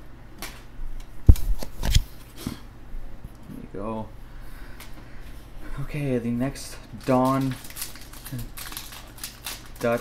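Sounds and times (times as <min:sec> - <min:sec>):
foil wrapper crinkling and tearing: 0:07.0 - 0:10.0.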